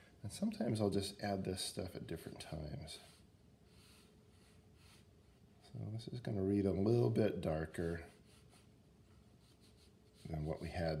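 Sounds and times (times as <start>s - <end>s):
brush stroking across paper: 2.9s - 5.7s, 7.8s - 11.0s.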